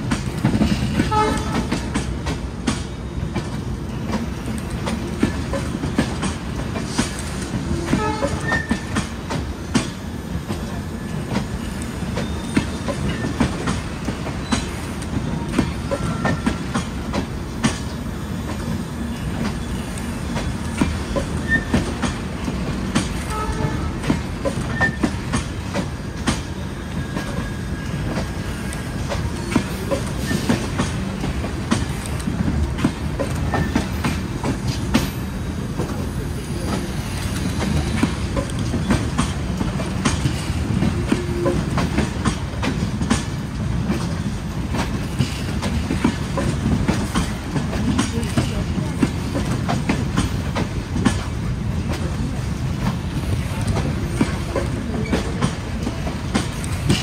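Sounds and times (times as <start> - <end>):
train wheels rumbling: 0.0 - 57.0
wheels clacking over rail joints: 0.0 - 57.0.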